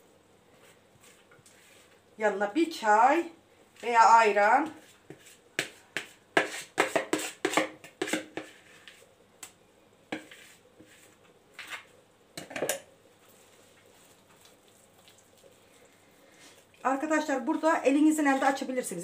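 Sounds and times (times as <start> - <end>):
spoon scraping and knocking bowl: 4.7 - 8.9, 10.1 - 12.8.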